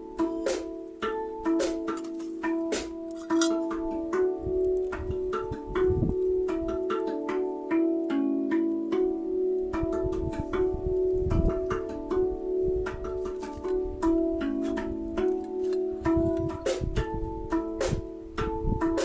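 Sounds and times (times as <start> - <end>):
plucked notes over held tones: 0.0 - 19.0.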